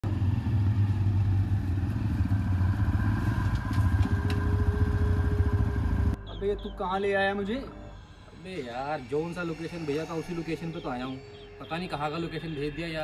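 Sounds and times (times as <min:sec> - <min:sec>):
motorcycle engines running: 0:00.0 - 0:06.4.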